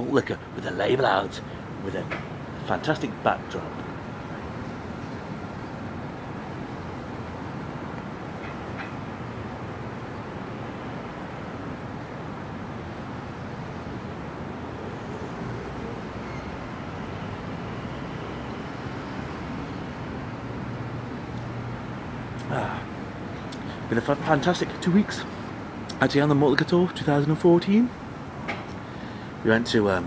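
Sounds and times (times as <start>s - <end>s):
distant traffic rumble: 0.0s - 30.0s.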